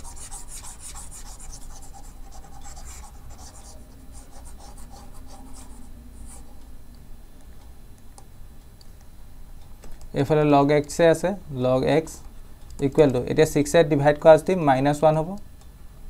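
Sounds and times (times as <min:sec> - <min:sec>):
stylus scratching on tablet screen: 0:00.0 - 0:06.6
low steady hum: 0:00.0 - 0:16.0.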